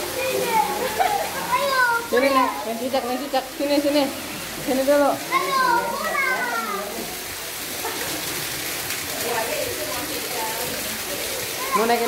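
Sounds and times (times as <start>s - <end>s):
child's voice: 0.0s - 2.6s, 5.3s - 7.1s, 11.6s - 12.0s
people talking: 0.0s - 7.2s, 9.1s - 12.0s.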